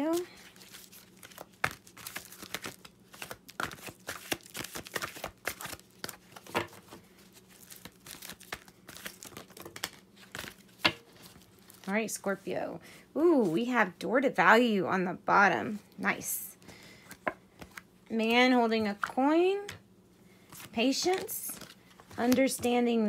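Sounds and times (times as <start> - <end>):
cards being shuffled: 0.1 - 11.9, 17.0 - 17.9, 20.5 - 22.7.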